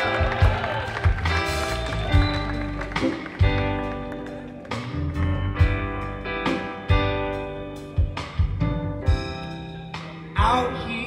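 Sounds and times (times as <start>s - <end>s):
drums: 0.0s - 11.0s
electric bass: 0.0s - 11.0s
electric guitar notes: 0.0s - 11.0s.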